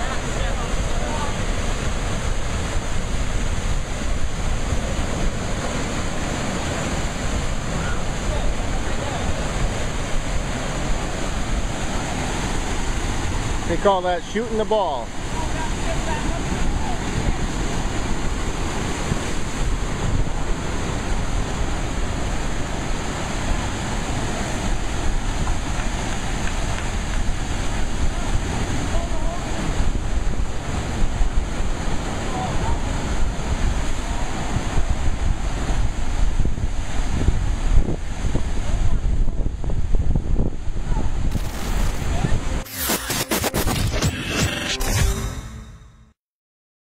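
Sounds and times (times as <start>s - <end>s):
surf churning over rocks: 0.0s - 39.3s, 40.7s - 42.6s
wind buffeting microphone: 15.1s - 42.6s.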